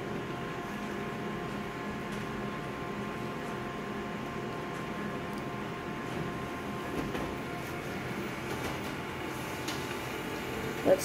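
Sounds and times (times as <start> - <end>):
copier mechanical hum: 0.0 - 11.0.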